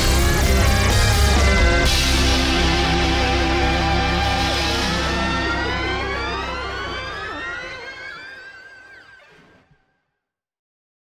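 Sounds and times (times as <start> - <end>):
live space-rock band: 0.0 - 9.6
electronic tone gliding upward: 0.0 - 9.8.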